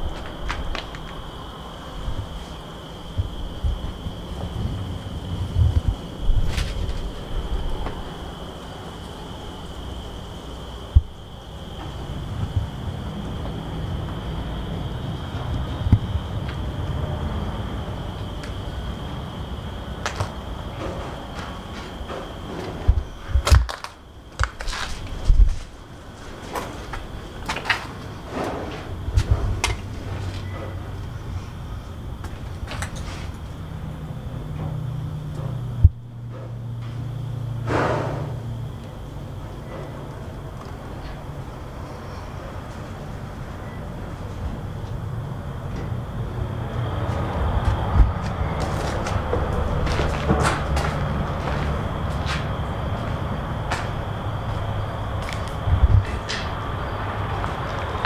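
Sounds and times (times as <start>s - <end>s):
footsteps on debris-strewn floor: 0.0s - 1.2s, 5.7s - 9.1s, 20.0s - 30.7s, 32.2s - 33.4s, 47.0s - 56.6s
distant truck traffic rumble: 0.0s - 58.0s.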